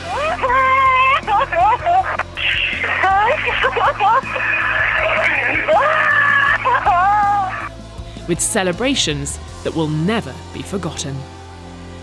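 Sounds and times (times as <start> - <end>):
music: 0.0 - 12.0
man screaming and sobbing over radio: 0.1 - 7.8.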